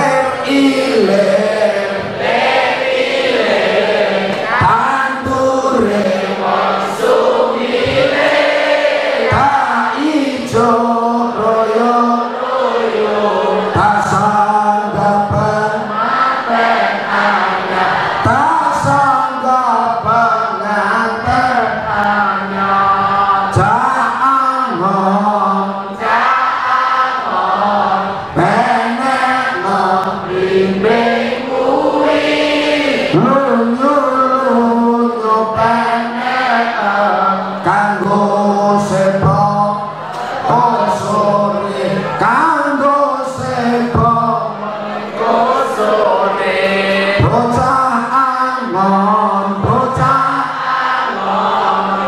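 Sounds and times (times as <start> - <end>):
person chanting into a microphone: 0.0 - 8.5, 9.1 - 52.0
many voices singing in unison: 0.0 - 52.0.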